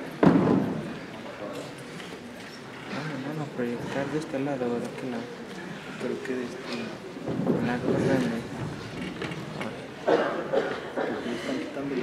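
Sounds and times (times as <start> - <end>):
indistinct voices in a hall: 0.0 - 12.0.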